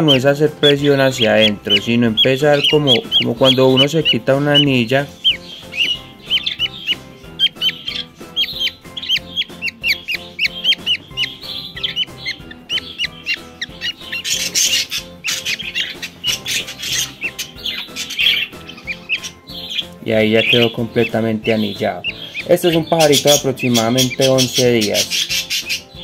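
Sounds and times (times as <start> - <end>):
bird chick chirping: 0.0 - 26.0
faint background music: 0.0 - 26.0.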